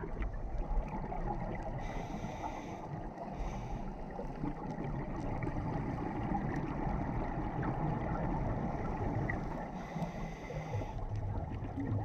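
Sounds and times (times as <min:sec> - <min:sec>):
muffled underwater rumble: 0:00.0 - 0:12.0.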